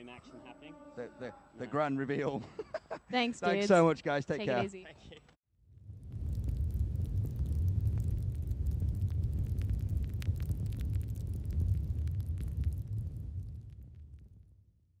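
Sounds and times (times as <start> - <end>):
deep rumble with crackles: 5.6 - 15.0.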